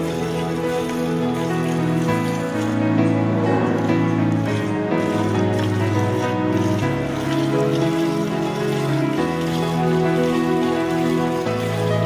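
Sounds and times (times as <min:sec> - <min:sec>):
music with sustained chords: 0:00.0 - 0:12.0.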